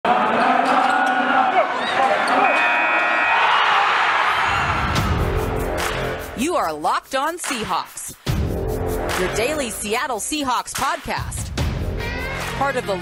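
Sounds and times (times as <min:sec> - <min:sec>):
arena crowd noise: 0:00.0 - 0:05.2.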